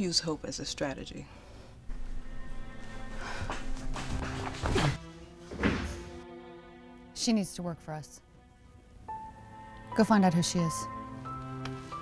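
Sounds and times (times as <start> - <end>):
sustained background music: 0.0 - 12.0.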